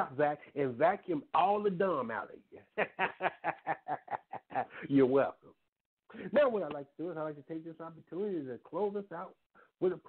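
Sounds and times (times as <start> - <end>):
man speaking: 0.0 - 2.8, 4.6 - 10.0
man chuckling: 2.6 - 4.9.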